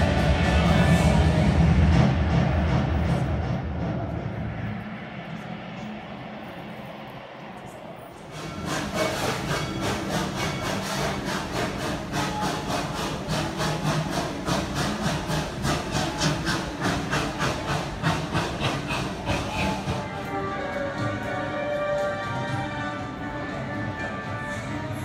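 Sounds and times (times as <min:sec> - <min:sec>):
roller coaster clacking: 0:00.0 - 0:25.0.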